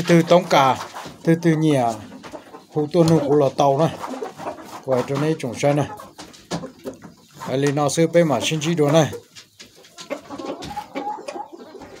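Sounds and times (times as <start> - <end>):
rooster clucking softly: 1.8 - 12.0.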